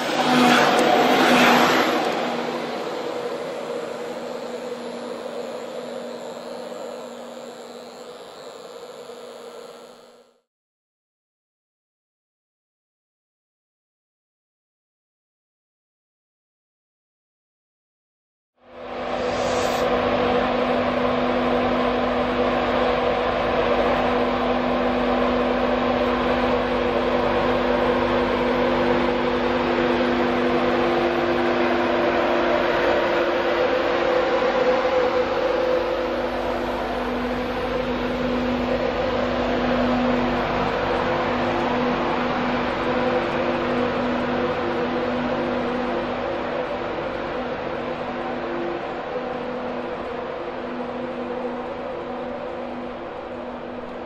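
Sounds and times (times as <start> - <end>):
electric train hum: 0.0 - 10.5, 18.6 - 54.0.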